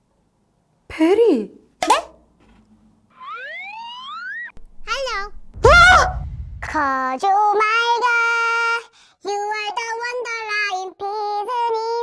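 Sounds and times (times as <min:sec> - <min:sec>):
comic rising whistle: 0:03.2 - 0:07.1.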